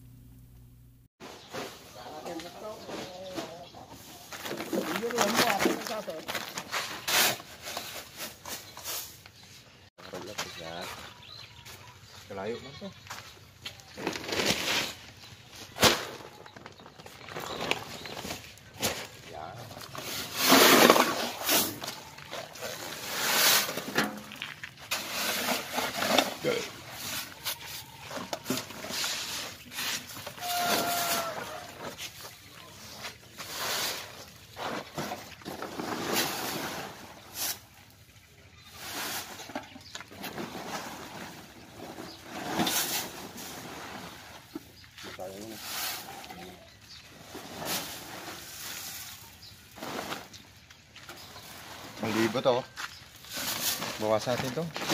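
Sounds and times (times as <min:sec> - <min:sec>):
metal basin scraping tarp: 0:01.2 - 0:13.2, 0:13.8 - 0:54.9
bleat-like animal call: 0:30.4 - 0:31.8.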